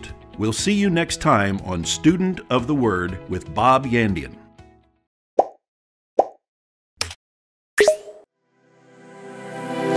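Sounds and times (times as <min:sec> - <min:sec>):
cartoon pop sound effects: 0:05.4 - 0:05.6, 0:06.2 - 0:06.4, 0:07.8 - 0:08.3.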